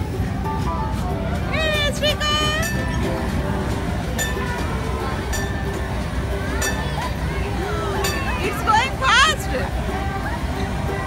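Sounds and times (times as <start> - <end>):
background chatter: 0.0 - 11.0
steady low rumble: 0.0 - 11.0.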